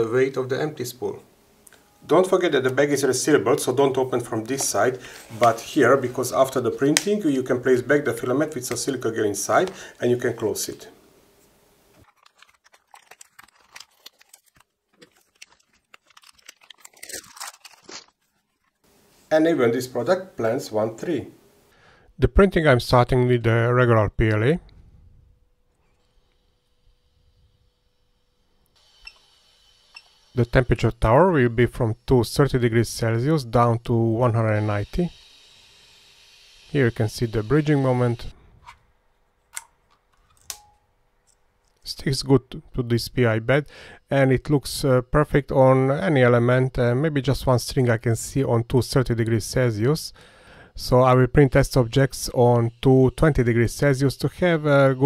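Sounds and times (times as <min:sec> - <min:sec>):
plastic bags crinkling: 0:12.0 - 0:18.8.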